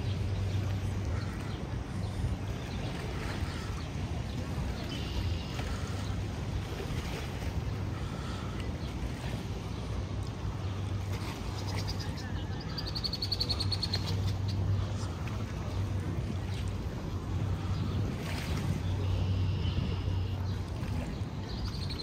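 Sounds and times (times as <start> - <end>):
steady low hum: 0.0 - 22.0
faint voices: 12.0 - 22.0.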